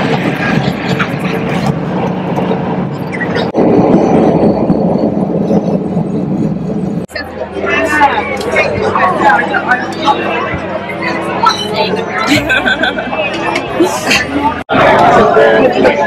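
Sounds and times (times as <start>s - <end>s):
voices chattering: 0.0s - 16.0s.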